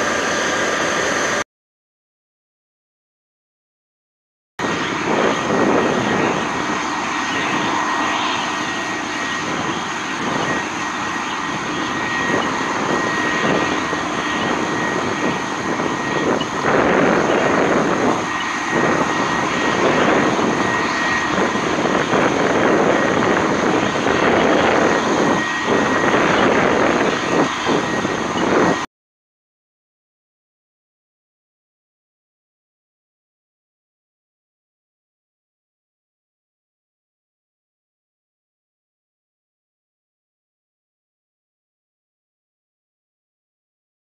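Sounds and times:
faint high whine: 0.0s - 1.4s, 4.6s - 28.9s
hose water spraying roar: 0.0s - 1.4s, 4.6s - 28.8s.

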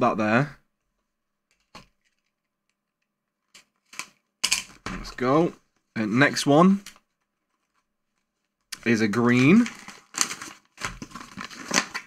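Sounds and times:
cardboard box and envelopes handled: 9.2s - 12.0s.

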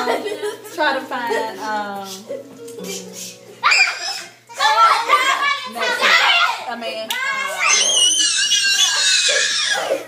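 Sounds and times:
child screaming: 3.6s - 10.0s.

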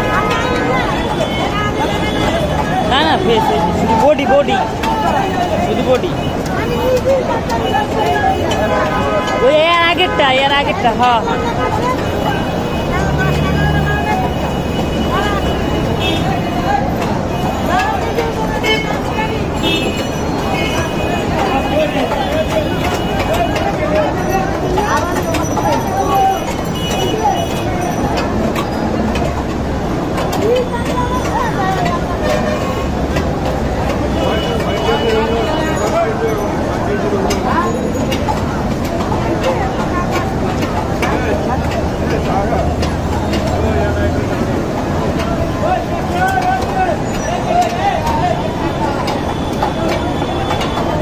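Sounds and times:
distant voices talking: 0.0s - 51.0s
motor vehicle engine rumble: 0.0s - 51.0s.

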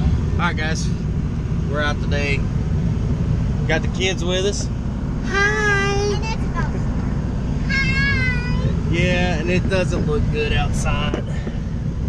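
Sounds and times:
truck engine low rumble: 0.0s - 12.0s
child calling out high-pitched: 7.6s - 8.8s.

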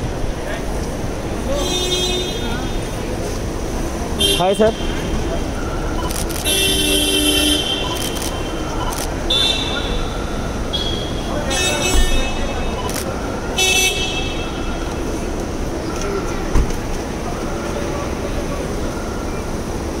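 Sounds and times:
traffic noise: 0.0s - 20.0s
voices: 0.0s - 20.0s
car horns honking: 1.4s - 3.0s, 4.1s - 15.2s
car door shutting: 16.5s - 16.9s.

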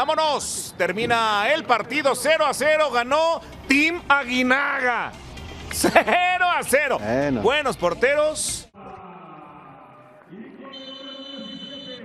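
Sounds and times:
high electronic tone: 10.8s - 12.0s.

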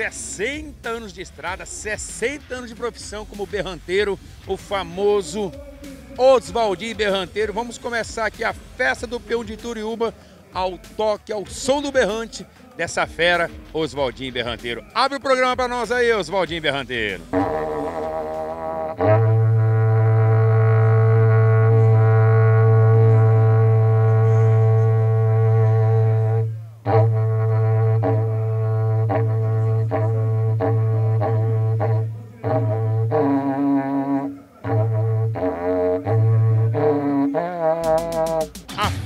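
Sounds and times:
cattle horn trumpet blowing: 16.6s - 38.8s.

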